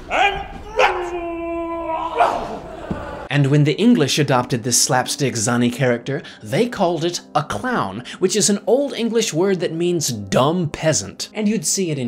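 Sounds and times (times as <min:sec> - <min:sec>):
man yelping: 0:00.0 - 0:02.7
man wailing: 0:00.0 - 0:03.2.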